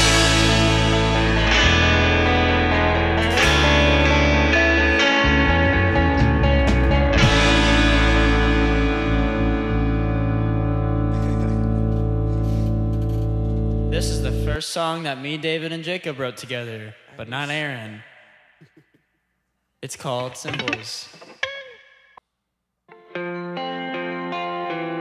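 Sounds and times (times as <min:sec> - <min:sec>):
band striking guitar chords: 0:00.0 - 0:14.6, 0:20.2 - 0:21.8.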